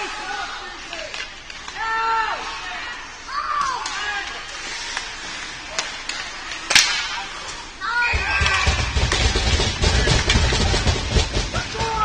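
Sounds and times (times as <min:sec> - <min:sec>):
sharp crack on ice rink: 0:03.6 - 0:07.6.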